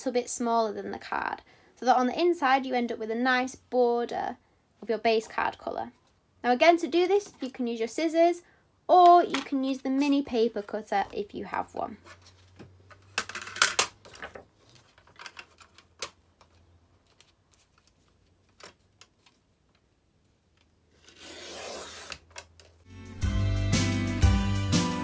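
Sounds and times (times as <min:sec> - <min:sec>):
paper rustling: 0:14.0 - 0:19.9
background music: 0:22.9 - 0:25.0.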